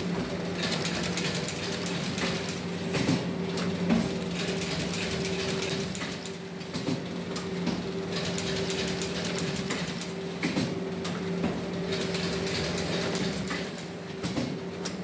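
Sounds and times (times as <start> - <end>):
binding machine hum: 0.0 - 14.3
rapid mechanical clicking: 0.6 - 6.8, 7.4 - 10.2.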